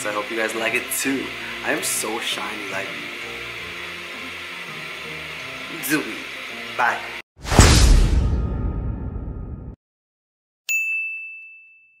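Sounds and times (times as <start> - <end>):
high-pitched ding chime: 10.7 - 12.0.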